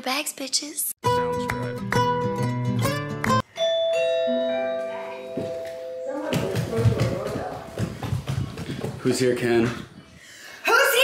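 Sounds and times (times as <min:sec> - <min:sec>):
doorbell chime: 0:03.4 - 0:07.3
voices: 0:04.8 - 0:07.9.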